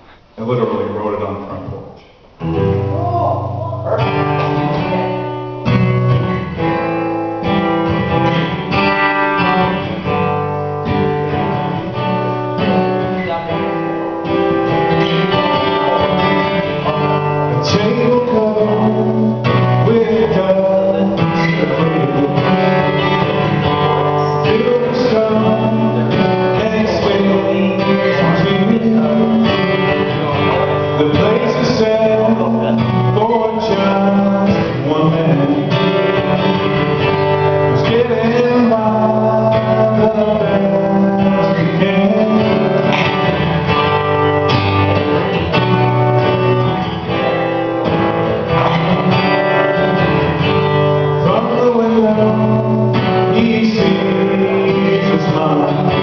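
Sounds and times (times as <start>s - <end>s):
acoustic guitar strumming chords: 0.0s - 56.0s
man singing: 14.6s - 44.0s, 48.2s - 50.0s, 51.0s - 56.0s.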